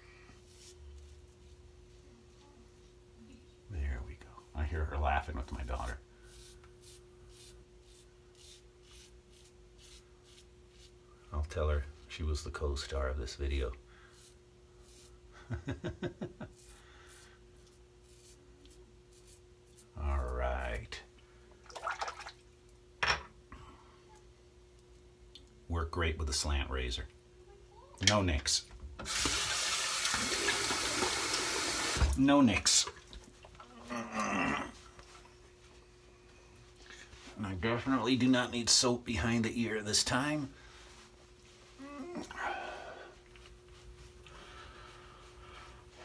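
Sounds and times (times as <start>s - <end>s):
faint steady hum: 0.0s - 46.0s
razor scraping stubble: 5.6s - 11.0s, 14.1s - 15.2s
man chuckling: 15.4s - 16.6s.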